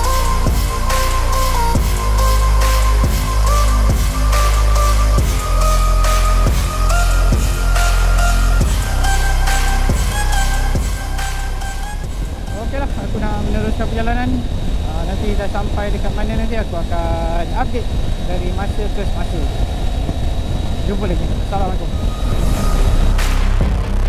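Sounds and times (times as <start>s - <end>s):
wind rush and motorcycle engine: 11.8s - 24.0s
person speaking: 12.5s - 19.5s.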